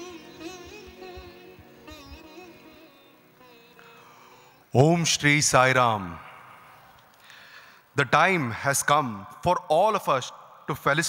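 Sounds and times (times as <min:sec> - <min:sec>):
faint breath at microphone: 0:06.6 - 0:07.9.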